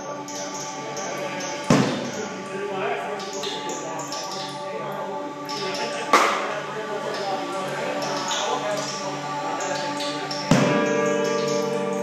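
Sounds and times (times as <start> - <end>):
electric guitar drone: 9.9 - 12.0.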